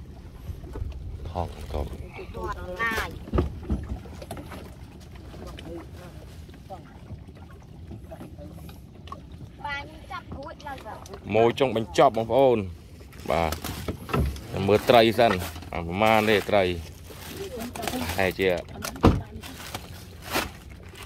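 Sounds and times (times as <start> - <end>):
women talking: 18.7 - 19.7.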